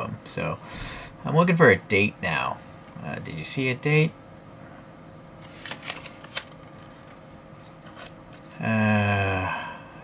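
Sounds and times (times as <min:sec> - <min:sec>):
paper leaflet crinkling: 0:05.4 - 0:08.6.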